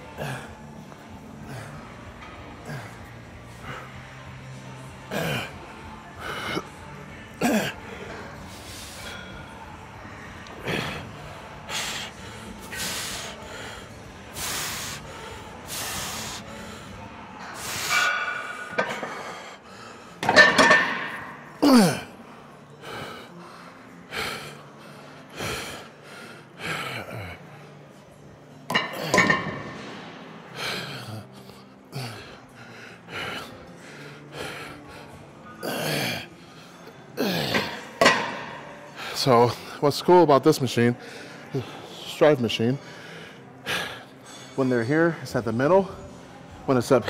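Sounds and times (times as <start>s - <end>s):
man breathing hard and grunting: 0.0s - 4.4s, 5.1s - 27.8s, 30.4s - 39.8s, 42.8s - 44.6s.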